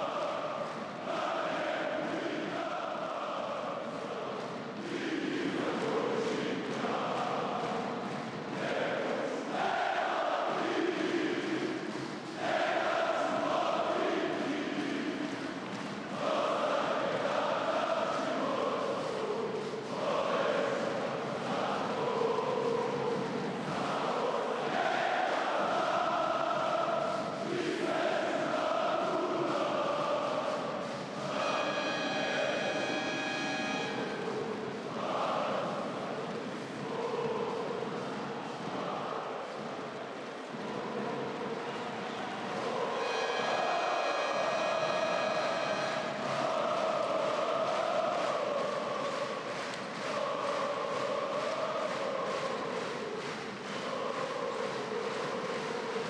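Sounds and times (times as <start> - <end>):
crowd singing chants: 0.0 - 56.0
shrill steady tone: 31.2 - 34.3, 42.8 - 46.4.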